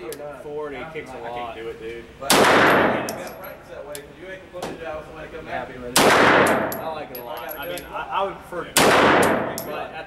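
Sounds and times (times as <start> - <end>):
people talking: 0.0 - 10.0
gunshot echo: 2.3 - 3.2, 6.0 - 6.8, 8.8 - 9.7
sharp crack: 2.3 - 3.3, 6.0 - 6.9, 8.8 - 9.7.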